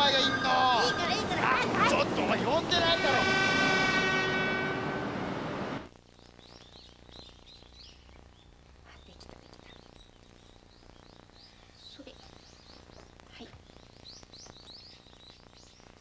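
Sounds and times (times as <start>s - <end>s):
train horn: 2.5s - 5.9s
birds chirping faintly: 6.0s - 16.0s.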